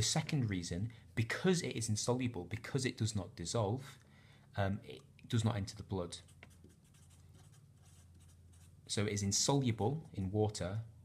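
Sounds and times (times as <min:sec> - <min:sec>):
marker pen scratching on paper: 0:06.2 - 0:08.8.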